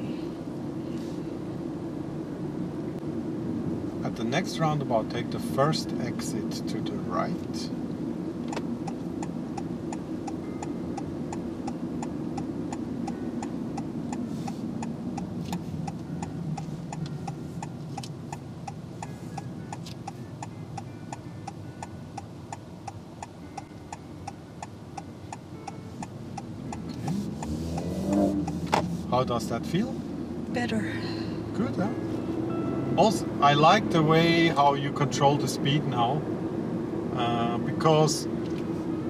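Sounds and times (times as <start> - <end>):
tyres rumbling on road: 0.0 - 39.0
turn signal ticking: 5.1 - 30.8.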